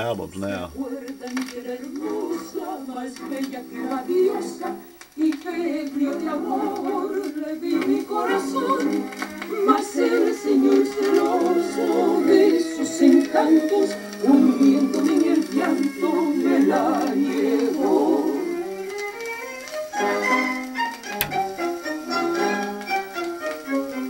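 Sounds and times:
song playing from vinyl record: 0:00.0 - 0:24.0.

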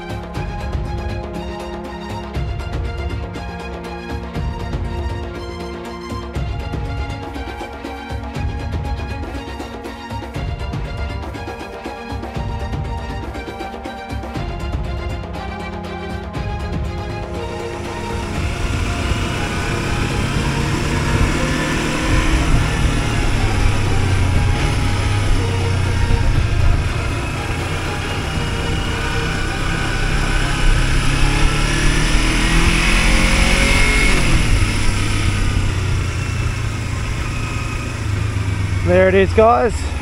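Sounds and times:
tyres on gravel road: 0:14.7 - 0:40.0
motorcycle engine revving: 0:16.4 - 0:40.0.

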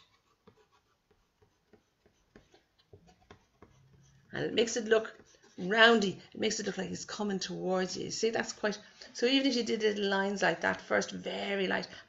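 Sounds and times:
paintbrush tapping on paper: 0:00.4 - 0:05.4.

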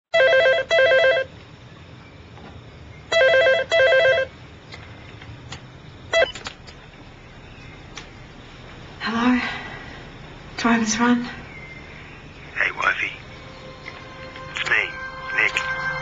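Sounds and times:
telephone ringing: 0:00.2 - 0:01.3, 0:03.1 - 0:04.3.

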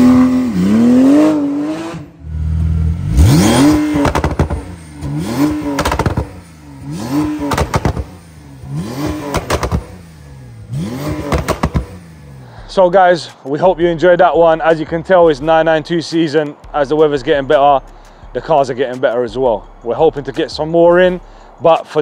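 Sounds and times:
car engine revving: 0:00.0 - 0:19.0
exhaust crackles and pops: 0:02.5 - 0:15.9.

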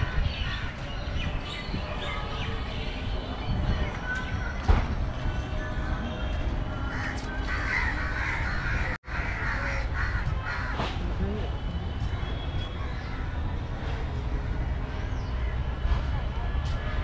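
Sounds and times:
crows cawing: 0:06.9 - 0:10.9.

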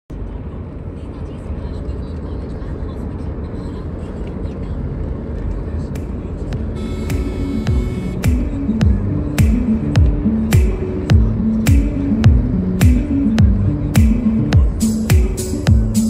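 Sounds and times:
car road noise rumble: 0:00.1 - 0:16.0
music with held tones and bass: 0:06.7 - 0:16.0.

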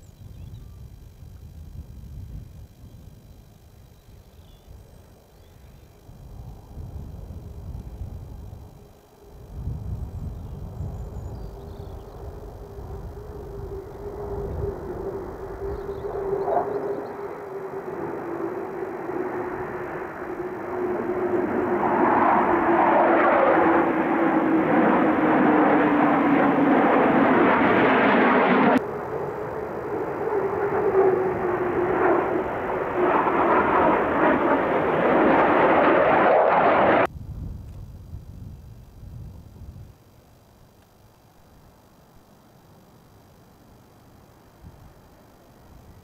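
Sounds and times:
jet engine whine: 0:00.0 - 0:46.0
jet engine rushing roar: 0:06.5 - 0:37.1.

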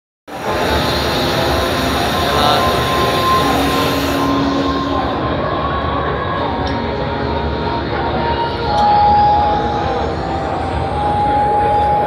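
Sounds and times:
crowd chatter: 0:00.3 - 0:12.0
faint steady tones: 0:00.3 - 0:12.0
hall noise: 0:00.3 - 0:12.0.

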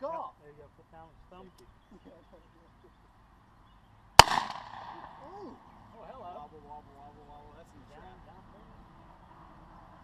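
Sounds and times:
golf-ball gun shot: 0:04.2 - 0:05.3.

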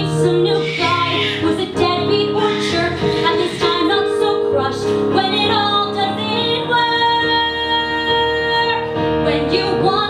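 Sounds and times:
instrumental accompaniment: 0:00.0 - 0:10.0
woman singing a ballad: 0:00.0 - 0:10.0.

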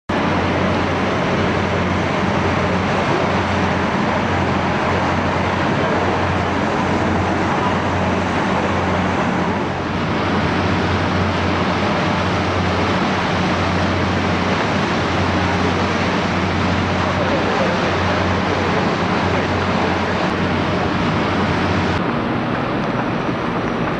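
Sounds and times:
boat engine hum: 0:00.1 - 0:23.9
churning wake water: 0:00.1 - 0:23.9.

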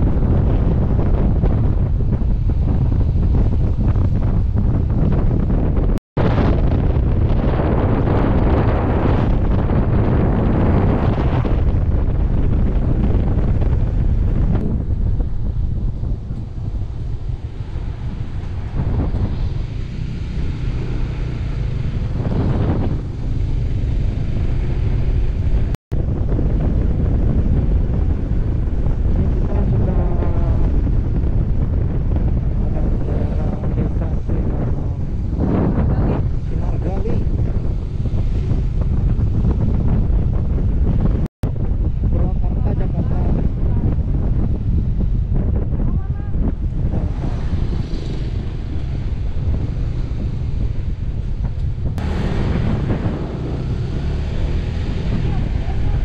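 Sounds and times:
motorcycle running: 0:00.0 - 0:56.0
road noise: 0:00.0 - 0:56.0
wind buffeting microphone: 0:00.0 - 0:56.0.

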